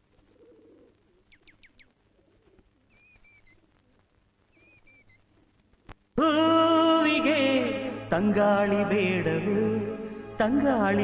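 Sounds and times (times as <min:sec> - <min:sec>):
faint bird calls: 0:00.2 - 0:05.5.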